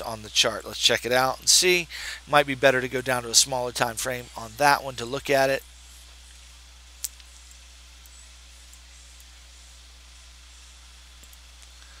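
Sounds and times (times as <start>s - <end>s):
low electrical hum: 0.0s - 12.0s
microphone hiss: 0.0s - 12.0s
faint ticks: 7.0s - 9.4s, 10.1s - 12.0s.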